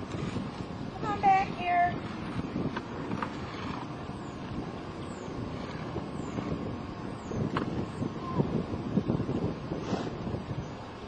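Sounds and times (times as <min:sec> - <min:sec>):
plastic wheels rolling over asphalt: 0:00.0 - 0:10.4
wind on microphone: 0:00.0 - 0:11.0.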